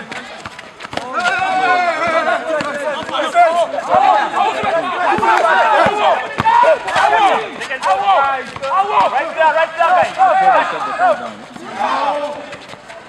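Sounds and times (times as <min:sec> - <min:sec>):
voices shouting over one another: 0:01.0 - 0:12.6.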